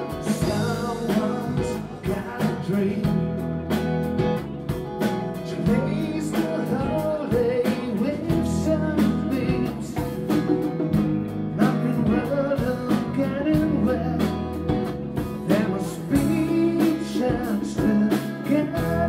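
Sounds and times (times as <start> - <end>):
person singing lead vocal: 0.0 - 3.6, 5.3 - 10.7, 11.4 - 19.0
rock band playing live: 0.0 - 19.0.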